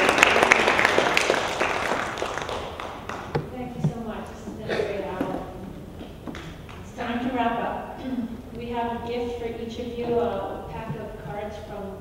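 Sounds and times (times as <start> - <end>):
audience applause: 0.0 - 3.5.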